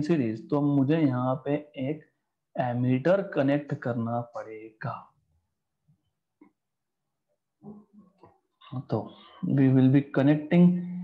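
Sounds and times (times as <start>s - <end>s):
man speaking: 2.6s - 5.2s, 8.7s - 11.0s.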